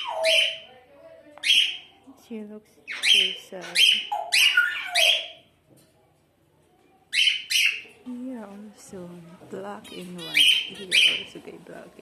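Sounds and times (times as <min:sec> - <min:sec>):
budgerigar chirping call: 0:00.0 - 0:00.7, 0:02.9 - 0:05.4, 0:07.1 - 0:07.8, 0:09.8 - 0:11.4.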